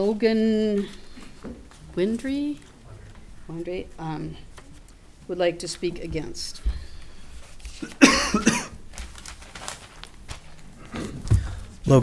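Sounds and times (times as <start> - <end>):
person coughing: 7.8 - 8.8.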